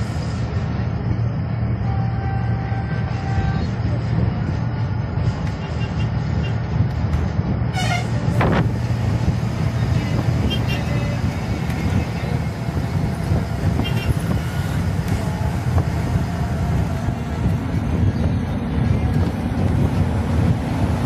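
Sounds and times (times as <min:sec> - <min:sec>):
bus diesel engine droning: 0:00.0 - 0:21.0
horn toot: 0:07.7 - 0:08.2.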